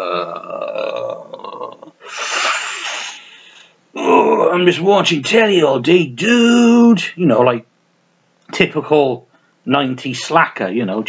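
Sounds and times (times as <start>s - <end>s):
man making croaking burp sound: 0.0s - 2.0s.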